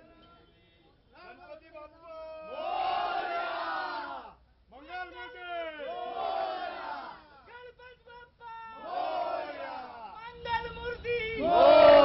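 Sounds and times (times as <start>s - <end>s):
crowd shouting and chanting: 2.5s - 7.6s, 8.4s - 12.0s.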